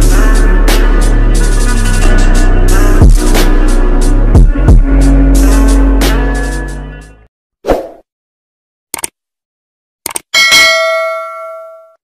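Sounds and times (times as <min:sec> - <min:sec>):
bell ding: 0:10.4 - 0:12.0.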